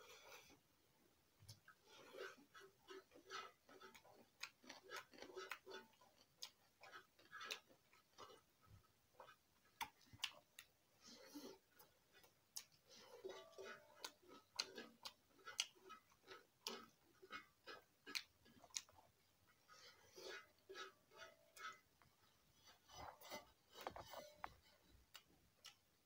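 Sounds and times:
fingers squishing rice: 0:01.4 - 0:26.0
chewing smacks and clicks: 0:01.5 - 0:08.5, 0:09.2 - 0:21.8, 0:22.9 - 0:25.9.

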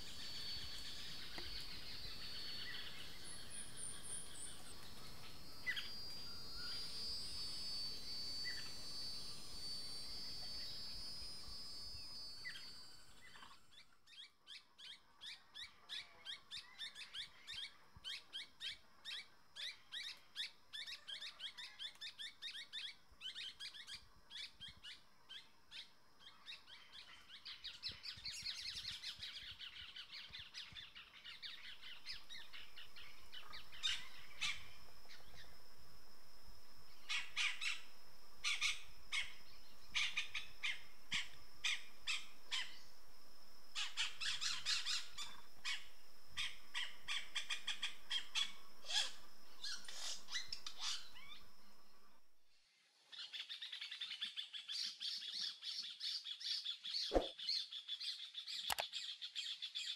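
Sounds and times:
high-pitched drone: 0:00.0 - 0:13.8
birds chirping and squawking: 0:43.8 - 0:51.4.

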